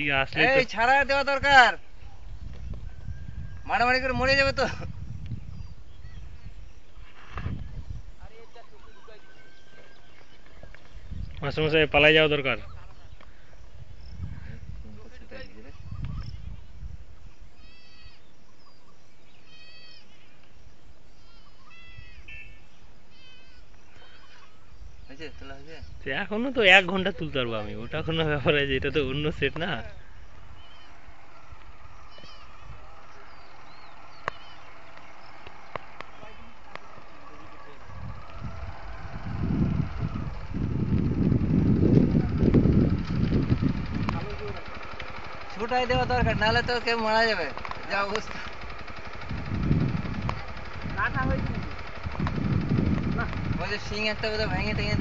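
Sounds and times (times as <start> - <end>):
wind buffeting microphone: 0.0 - 17.6, 24.5 - 55.0
high-pitched animal calls: 17.6 - 20.2, 21.2 - 25.4, 30.6 - 33.3.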